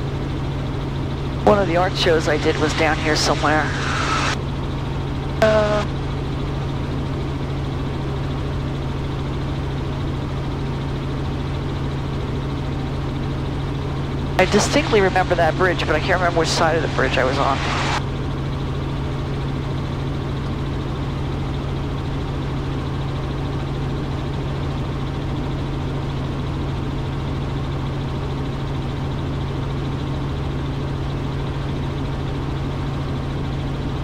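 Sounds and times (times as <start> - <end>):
helicopter engine and rotor drone: 0.0 - 34.0.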